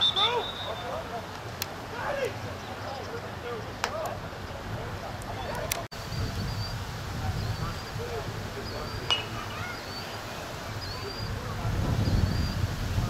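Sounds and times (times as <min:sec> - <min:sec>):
distant voices: 0:00.0 - 0:13.0
bird chirping: 0:08.6 - 0:11.4.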